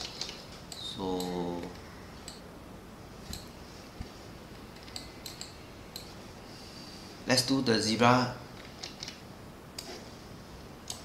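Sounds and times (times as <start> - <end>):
low room hiss: 0.0 - 11.0
computer mouse clicks: 4.8 - 6.1, 8.6 - 9.2.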